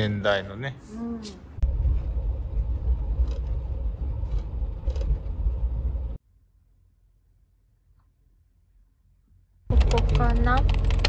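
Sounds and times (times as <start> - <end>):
engine and road rumble: 0.0 - 6.2, 9.7 - 11.0.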